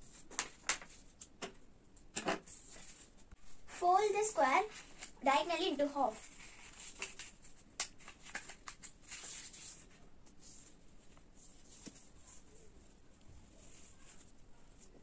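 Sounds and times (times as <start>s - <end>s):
paper being folded and creased: 0.0s - 1.4s, 2.3s - 3.4s, 4.4s - 15.0s.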